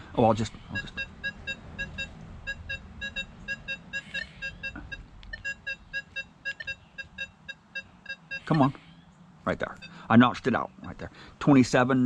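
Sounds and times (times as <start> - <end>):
metal detector rapid high beeps: 0.7 - 8.8.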